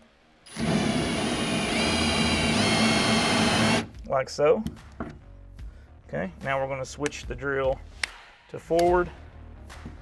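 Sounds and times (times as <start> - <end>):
cordless drill motor whining: 0.5 - 3.9.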